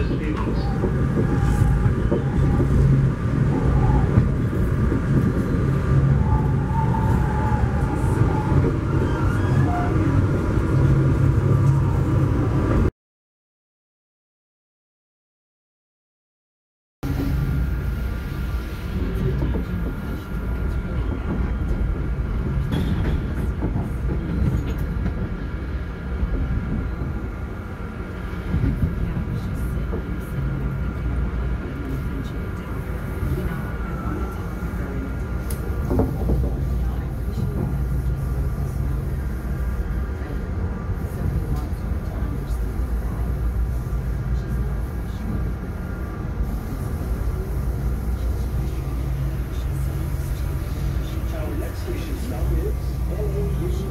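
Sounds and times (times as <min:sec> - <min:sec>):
train wheels rumbling on track: 0:00.0 - 0:12.9, 0:17.0 - 0:53.9.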